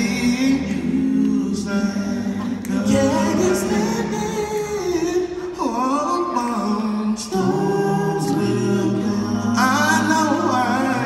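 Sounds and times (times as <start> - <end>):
male vocal quartet singing: 0.0 - 11.0.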